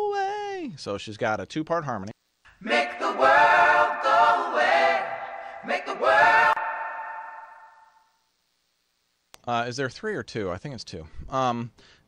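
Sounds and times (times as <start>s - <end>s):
harmony backing vocals echoing: 2.5s - 8.0s.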